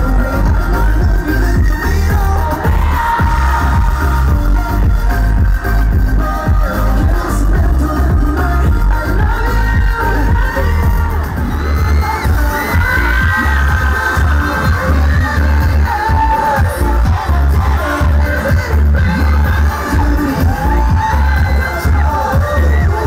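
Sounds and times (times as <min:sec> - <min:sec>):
dance music with bass beat: 0:00.0 - 0:23.0
crowd cheering: 0:02.2 - 0:04.4, 0:09.4 - 0:23.0.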